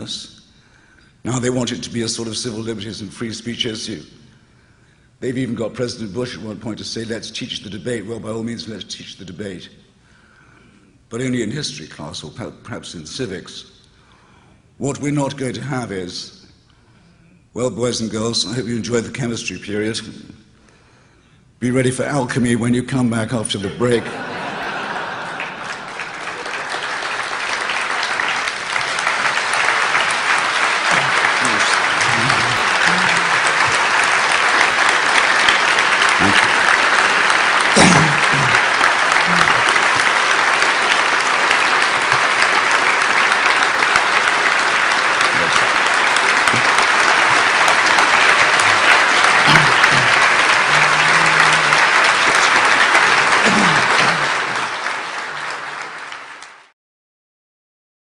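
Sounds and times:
audience applauding: 23.8 - 56.7
voices calling out: 30.6 - 34.9, 36.0 - 40.0.

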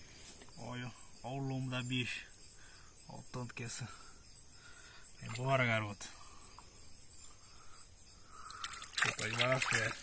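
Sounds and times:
water lapping softly: 8.3 - 10.0
fish splashing in water: 8.5 - 10.0.

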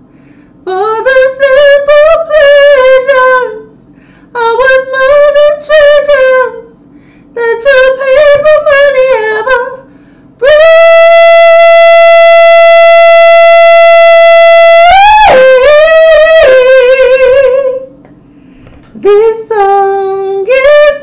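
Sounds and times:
woman singing unaccompanied: 0.7 - 6.8, 7.4 - 17.9, 18.9 - 21.0.

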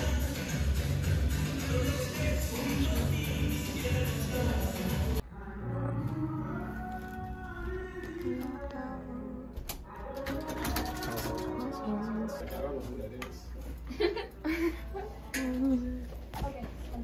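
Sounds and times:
background music: 0.0 - 13.1.

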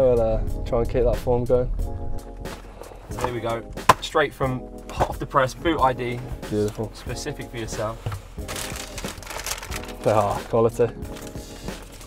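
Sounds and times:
background music: 0.0 - 12.0
wrapping paper rustling: 8.4 - 12.0.

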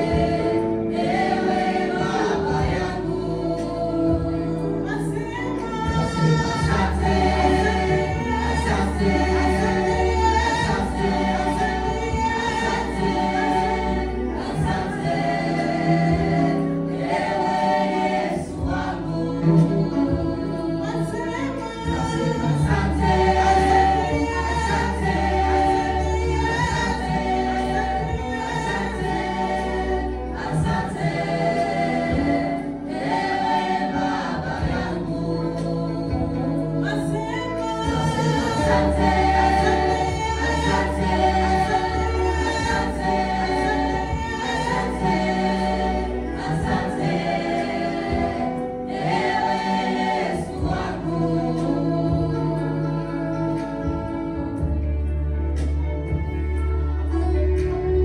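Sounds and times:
choir singing a hymn: 0.0 - 58.0
low bass notes: 0.0 - 58.0.

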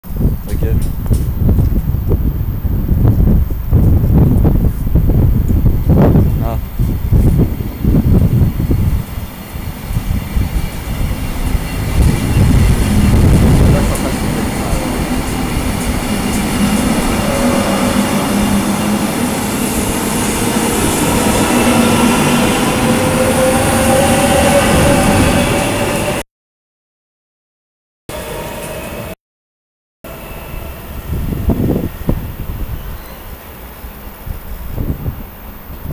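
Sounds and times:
train carriages rumbling past: 0.2 - 26.2
train whining and squealing: 0.5 - 26.2, 28.1 - 29.2, 30.1 - 35.9.

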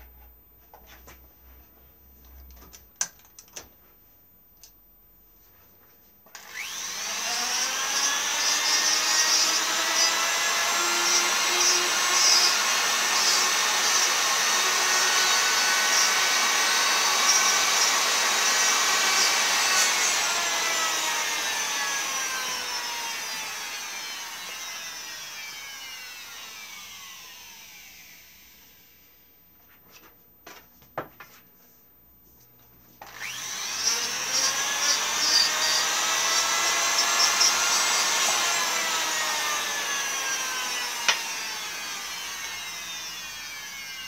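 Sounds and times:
rotary tool whining: 6.4 - 29.2, 33.0 - 44.0.

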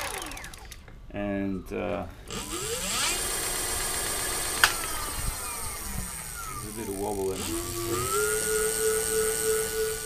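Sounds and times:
electric motor whining: 0.0 - 0.9, 1.8 - 10.0
sharp click: 4.5 - 5.1.

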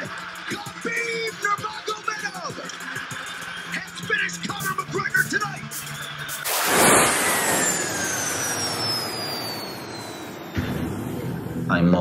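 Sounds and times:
whistle falling in pitch: 6.0 - 10.8
rushing noise: 6.4 - 10.7
sudden loud hit: 6.5 - 9.0.

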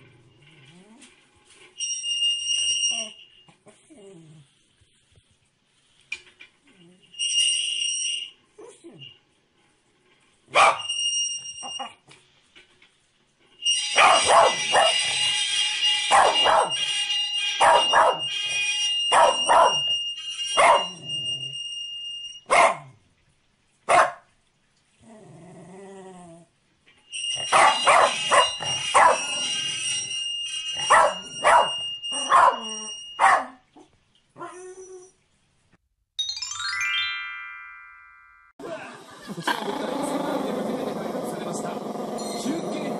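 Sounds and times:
dog barking sharply: 10.5 - 10.8, 22.5 - 22.9, 23.9 - 24.3.

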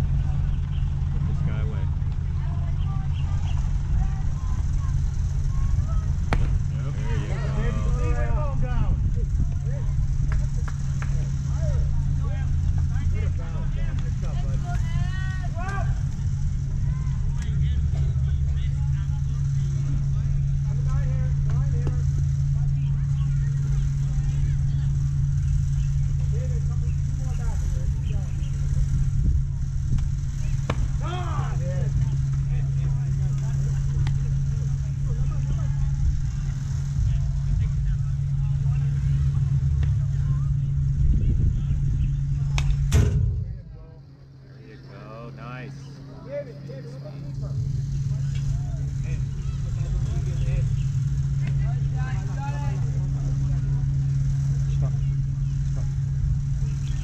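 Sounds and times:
faint distant voices: 0.0 - 57.0
low motor hum: 0.0 - 57.0.

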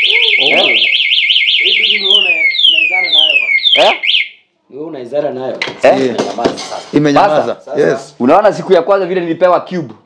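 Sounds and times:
motorcycle alarm siren warbling: 0.0 - 4.5.

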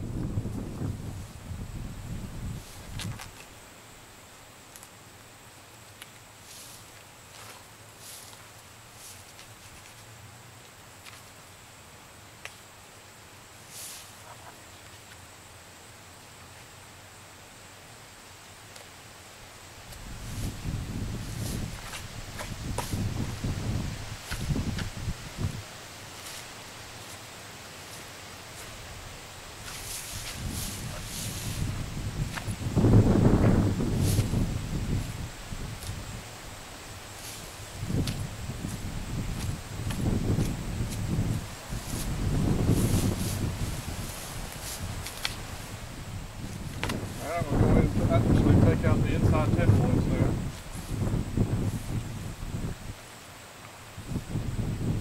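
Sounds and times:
wind buffeting microphone: 0.0 - 3.4, 19.9 - 25.7, 28.7 - 36.7, 37.5 - 53.0, 54.0 - 55.0.

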